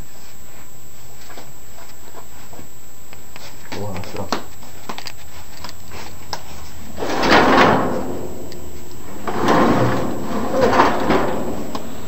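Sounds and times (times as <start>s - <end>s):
closet doors scraping along track: 6.8s - 12.0s.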